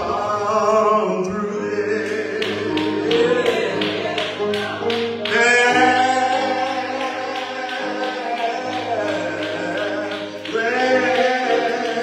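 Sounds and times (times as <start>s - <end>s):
voices singing: 0.0s - 12.0s.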